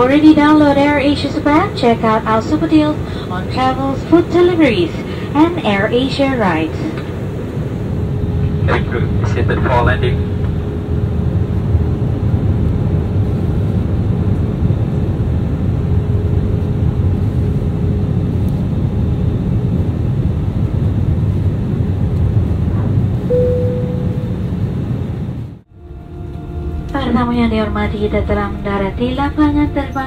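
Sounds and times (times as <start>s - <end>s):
airplane cabin engine rumble: 0.0s - 30.0s
faint steady whine: 0.0s - 30.0s
short high tone: 23.3s - 24.5s.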